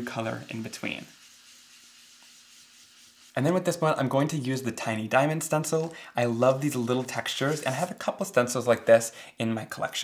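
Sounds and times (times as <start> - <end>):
foam tool rubbing on cardstock: 0.0 - 3.8, 6.6 - 8.0.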